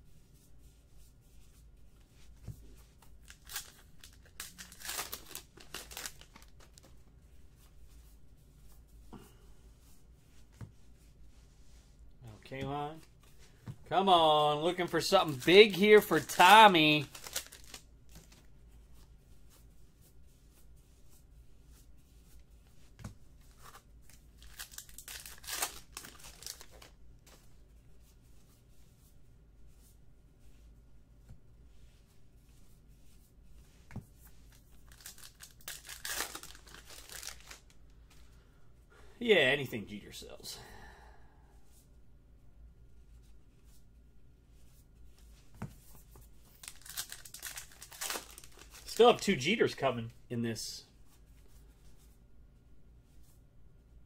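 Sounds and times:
trading cards rustling and clicking: 2.7 - 7.0, 14.7 - 18.5, 23.0 - 27.4, 33.9 - 38.3, 45.6 - 49.8
wrapper crinkling torn open: 3.2 - 6.7, 15.3 - 17.9, 24.4 - 26.9, 34.9 - 37.7, 46.6 - 49.0.

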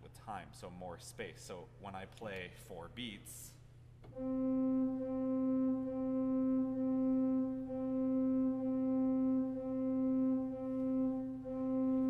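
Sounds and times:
pipe organ repeating one note: 4.1 - 12.0.

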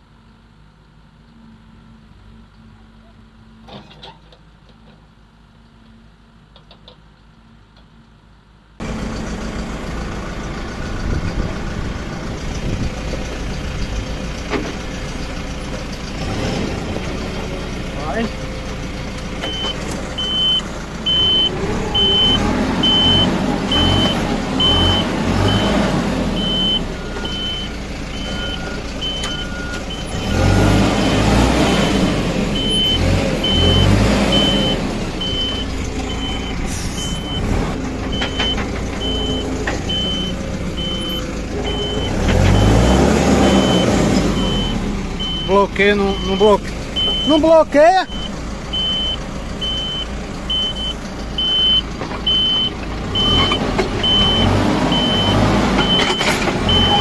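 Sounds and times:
tractor diesel engine straining: 0.0 - 57.0
high-pitched beeps: 19.4 - 25.8, 32.6 - 37.5, 38.1 - 57.0
lower beep: 19.4 - 25.8, 26.4 - 37.5, 38.1 - 47.4, 48.0 - 57.0.

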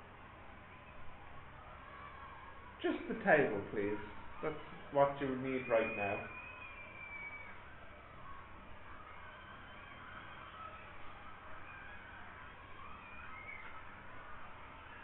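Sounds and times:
thin high tone sliding down: 3.4 - 10.8.

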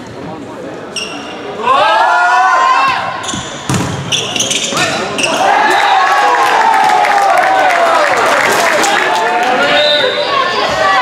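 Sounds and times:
sneakers squeaking on gym floor: 0.9 - 1.5, 3.0 - 5.5
volleyball struck: 3.4 - 5.0.

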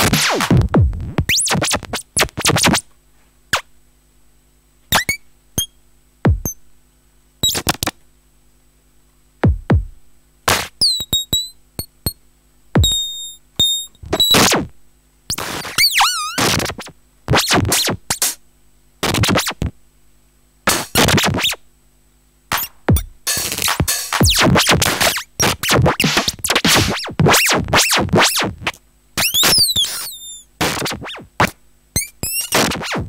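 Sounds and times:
sharp clicks with high beeps: 10.8 - 12.2, 12.8 - 14.5.

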